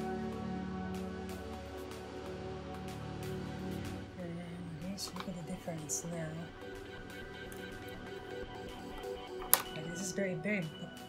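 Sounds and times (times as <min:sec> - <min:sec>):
background music sustained tones: 0:00.0 - 0:11.0.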